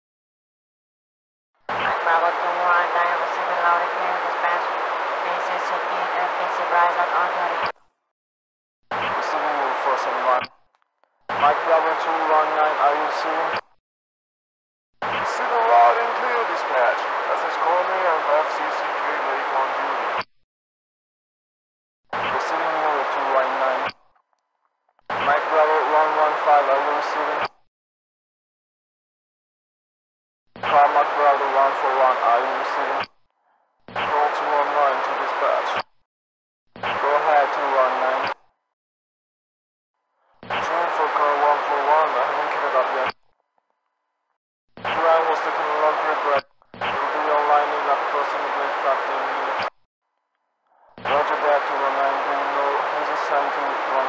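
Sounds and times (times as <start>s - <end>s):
person speaking over radio: 1.7s - 7.7s, 9.0s - 10.5s, 11.3s - 13.6s, 15.1s - 20.2s, 22.2s - 23.9s, 25.1s - 27.5s, 30.6s - 33.1s, 34.0s - 35.8s, 36.8s - 38.4s, 40.5s - 43.1s, 44.8s - 49.7s, 50.9s - 54.0s
radio static hiss: 1.7s - 7.7s, 8.9s - 10.5s, 11.3s - 13.6s, 15.0s - 20.3s, 22.2s - 23.9s, 25.1s - 27.5s, 30.6s - 33.1s, 33.9s - 35.8s, 36.8s - 38.4s, 40.4s - 43.1s, 44.8s - 49.7s, 50.8s - 54.0s.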